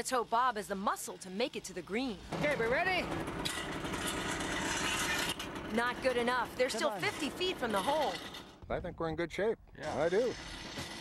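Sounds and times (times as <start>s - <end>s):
off-road engine running hard: 1.8s - 8.6s.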